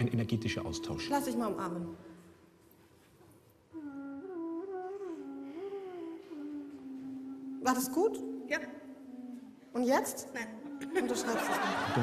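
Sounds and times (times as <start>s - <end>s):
person humming a slow tune: 3.7s - 9.7s, 10.3s - 11.3s.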